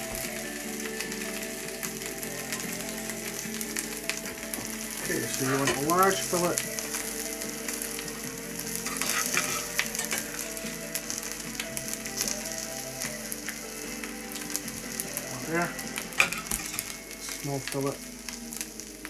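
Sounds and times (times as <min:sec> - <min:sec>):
oil sizzling in frying pan: 0:00.0 - 0:19.0.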